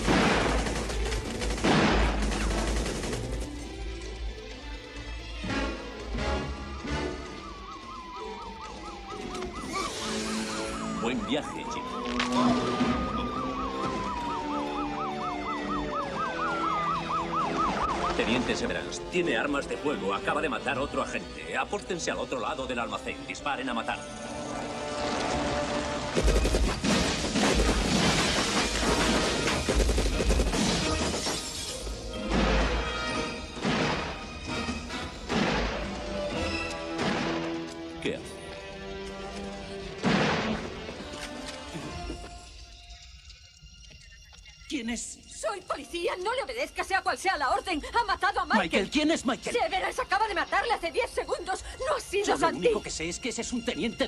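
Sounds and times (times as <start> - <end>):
film score music: 0.0 - 54.0
police siren wailing: 5.4 - 21.4
police siren yelping: 6.0 - 21.1
loud action music: 24.2 - 37.5
glass shattering: 26.8 - 29.7.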